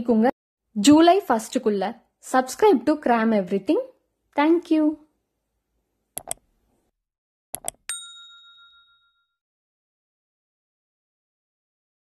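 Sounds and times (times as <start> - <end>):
bright bell ding: 7.8 - 9.4.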